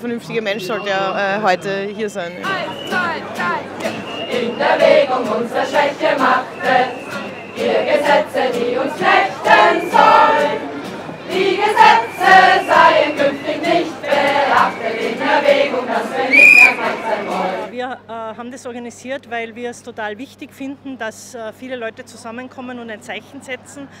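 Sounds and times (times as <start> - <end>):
choir singing: 2.4 - 17.7.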